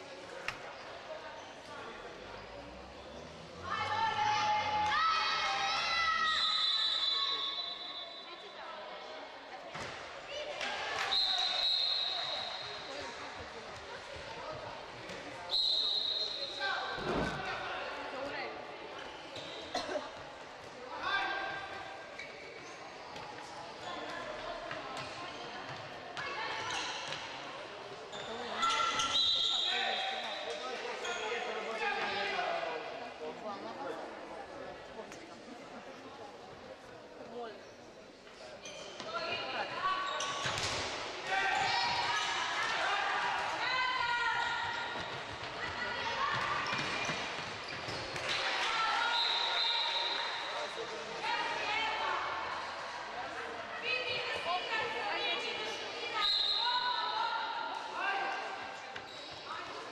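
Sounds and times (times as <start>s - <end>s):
high whistle blasts: 6.3s - 8.4s.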